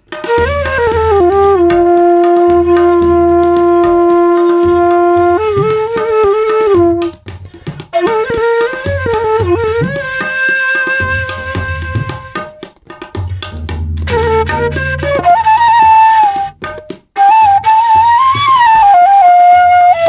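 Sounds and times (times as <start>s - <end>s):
tabla strokes: 0.0s - 20.0s
bamboo flute melody: 0.2s - 12.6s, 13.5s - 20.0s.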